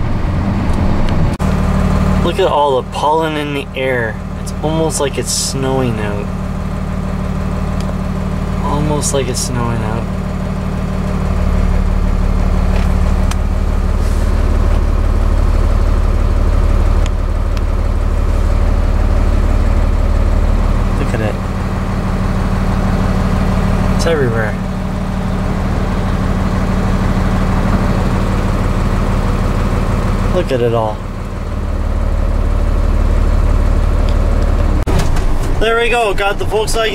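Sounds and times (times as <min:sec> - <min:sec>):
diesel engine droning: 0:00.0 - 0:36.9.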